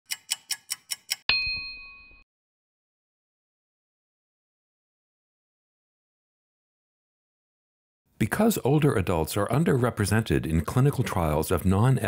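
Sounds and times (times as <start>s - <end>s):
quick clock ticks: 0.1s - 1.3s
bright bell-like ding: 1.3s - 2.2s.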